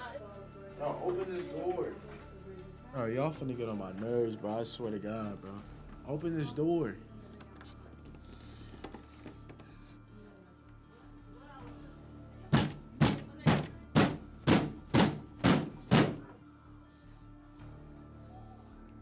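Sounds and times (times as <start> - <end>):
low background music: 0.0 - 19.0
heavy knocks on wooden door: 12.5 - 16.2.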